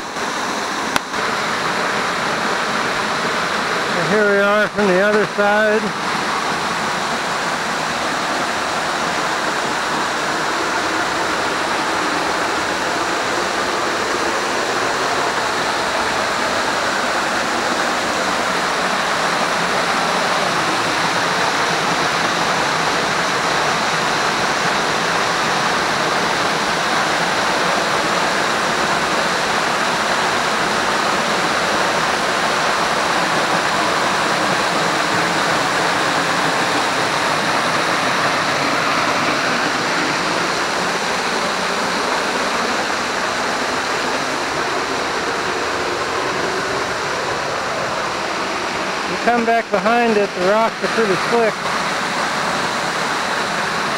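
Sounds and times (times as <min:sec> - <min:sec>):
waterfall rushing: 0:00.0 - 0:53.9.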